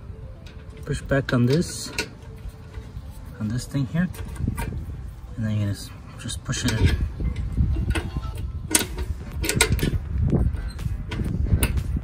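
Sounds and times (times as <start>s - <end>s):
metal coupling clicks and rattles: 0.4s - 4.9s, 6.2s - 12.0s
wind rumble on microphone: 2.4s - 12.0s.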